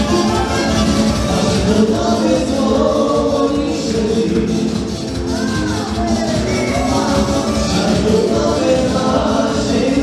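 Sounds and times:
live band dance music with singing: 0.0 - 10.0.

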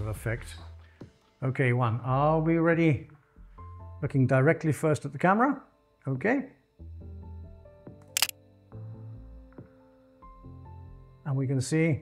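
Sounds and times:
soft background music: 0.0 - 12.0
camera shutter double click: 8.2 - 8.4.

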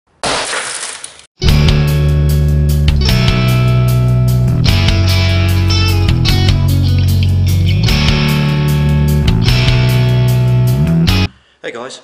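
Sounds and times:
glass shattering: 0.2 - 1.3
intro music with steady bass: 1.4 - 11.3.

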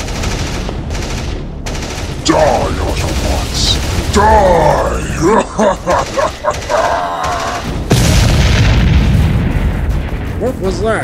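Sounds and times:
gunfire sound effect: 0.0 - 4.9
rumbling explosion boom: 7.5 - 11.0.

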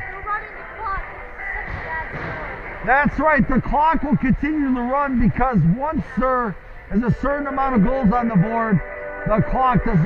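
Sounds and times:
distant voices: 0.0 - 10.0
low arena rumble: 0.0 - 10.0.

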